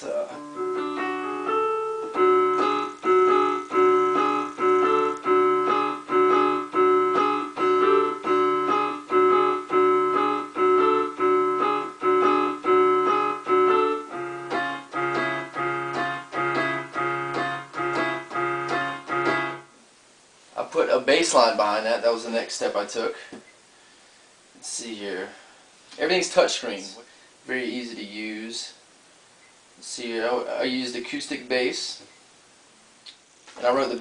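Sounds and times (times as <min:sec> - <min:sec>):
keyboard piano chord riff: 0:00.0 - 0:19.8.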